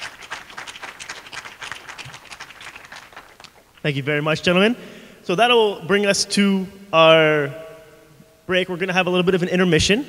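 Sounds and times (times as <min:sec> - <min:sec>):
audience applauding: 0:00.0 - 0:03.8.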